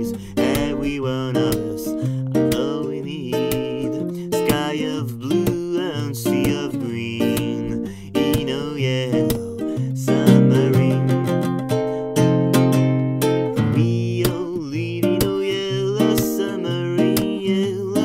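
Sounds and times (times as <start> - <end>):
man singing: 0.0 - 12.2, 13.5 - 18.0
acoustic guitar strumming: 0.0 - 18.0.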